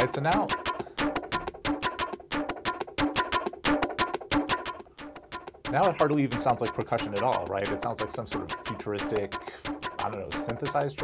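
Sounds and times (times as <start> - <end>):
distorted conga loop: 0.0 - 11.0.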